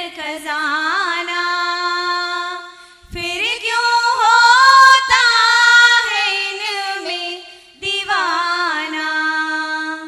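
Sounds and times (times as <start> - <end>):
women singing into microphones: 0.0 - 10.0.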